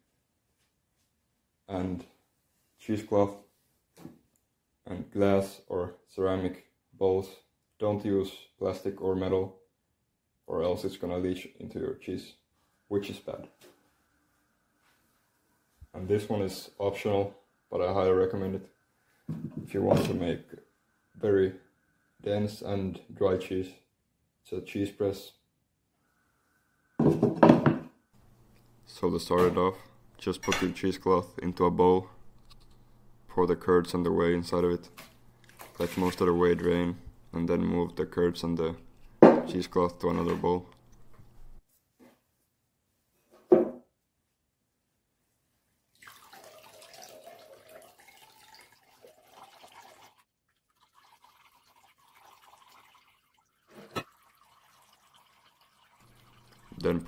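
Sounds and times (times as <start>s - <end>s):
liquid pouring into glass bowl: 46.0s - 57.0s.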